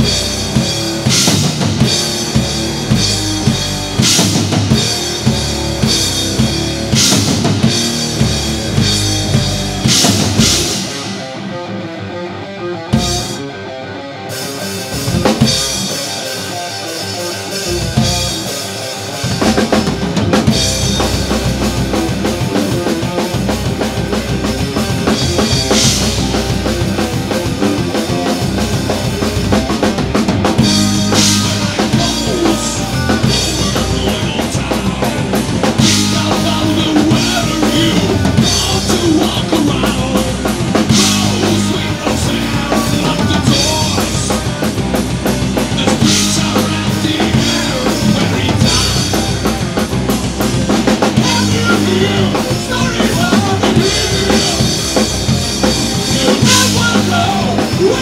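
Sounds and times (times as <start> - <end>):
bass drum and snare: 0.0 - 11.2, 19.2 - 58.0
electric guitars: 0.0 - 58.0
rock band playing live: 0.0 - 58.0.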